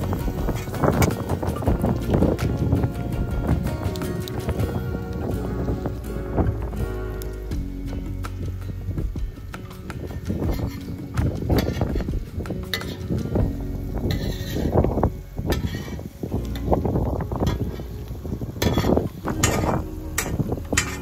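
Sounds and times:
metal utensils scraping steel pan: 0:12.7 - 0:13.2, 0:14.0 - 0:14.8, 0:15.5 - 0:16.0, 0:18.6 - 0:21.0.

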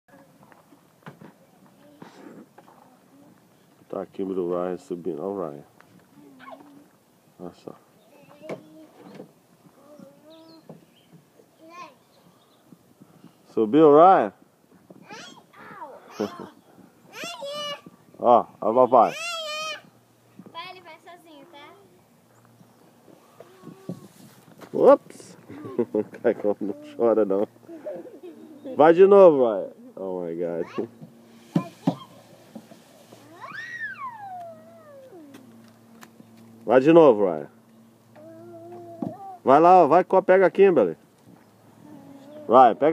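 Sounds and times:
young child whining: 0:06.2 - 0:06.9, 0:09.7 - 0:10.6, 0:15.0 - 0:17.8, 0:19.0 - 0:19.9, 0:23.2 - 0:24.2, 0:26.6 - 0:28.7, 0:33.2 - 0:35.6, 0:38.2 - 0:39.5, 0:41.8 - 0:42.9
faint child sounds: 0:09.7 - 0:10.7, 0:33.2 - 0:35.5, 0:38.2 - 0:39.5, 0:41.8 - 0:42.9.

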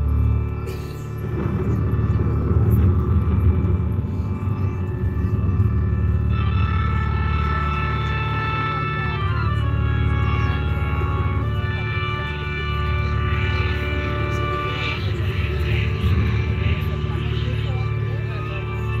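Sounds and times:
held chord tones: 0:00.0 - 0:19.0
low musical drone: 0:00.0 - 0:19.0.

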